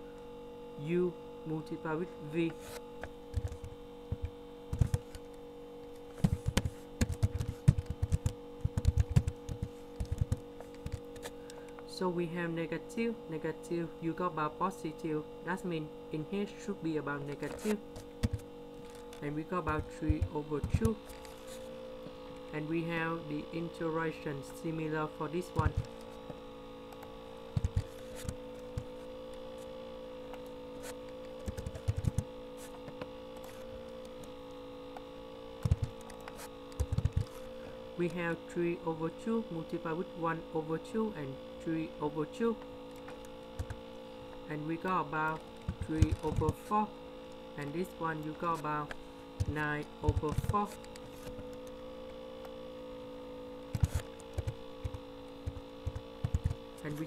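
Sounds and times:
steady electrical hum: 0:00.0 - 0:57.0
keyboard and mouse clicks: 0:03.3 - 0:05.2, 0:06.2 - 0:11.3, 0:31.3 - 0:32.3, 0:35.6 - 0:37.4, 0:42.9 - 0:43.8, 0:45.6 - 0:46.6, 0:53.7 - 0:56.6.

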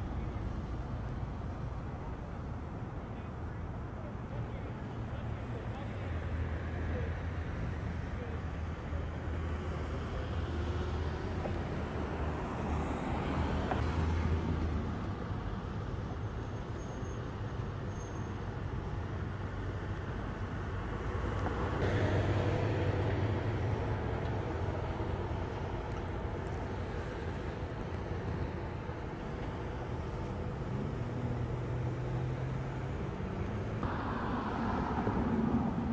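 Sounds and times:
vehicle engine rumble: 0:00.0 - 0:35.9.

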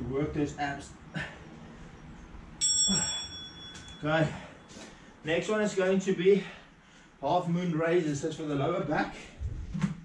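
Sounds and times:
interval timer bell ding: 0:02.6 - 0:04.6.

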